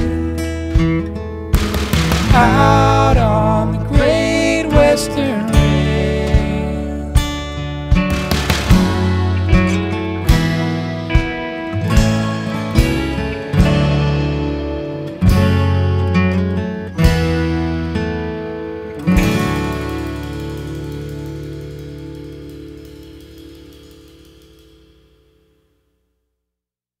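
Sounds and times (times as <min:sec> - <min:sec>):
acoustic guitar chords: 0:00.0 - 0:26.0.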